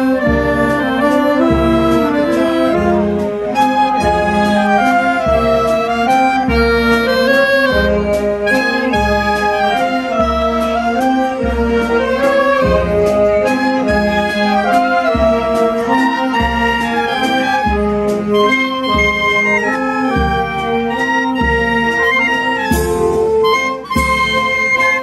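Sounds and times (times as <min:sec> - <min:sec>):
low bass notes: 0:00.0 - 0:23.4
wind band playing tune: 0:00.0 - 0:25.0.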